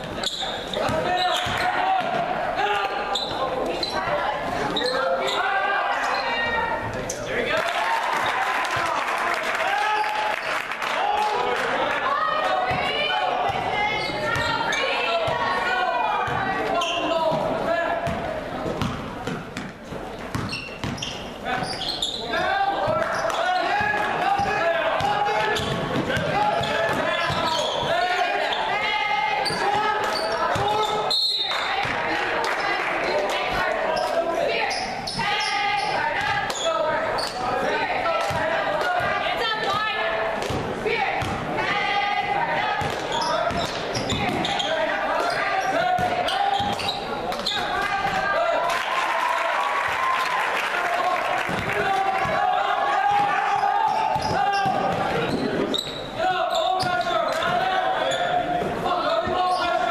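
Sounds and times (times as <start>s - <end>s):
voices in a hall: 0.0s - 59.9s
basketball bouncing on wooden floor: 20.3s - 21.7s.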